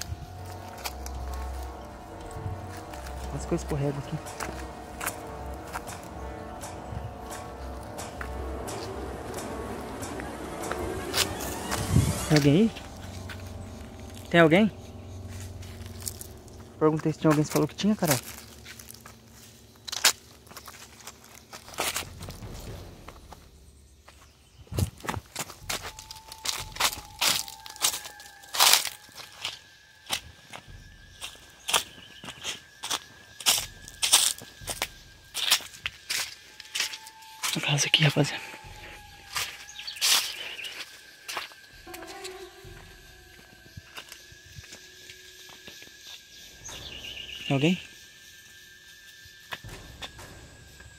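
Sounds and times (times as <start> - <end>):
footsteps crunching on dry leaves: 0.0 - 47.6
bird chirping: 30.6 - 36.1, 37.6 - 49.0.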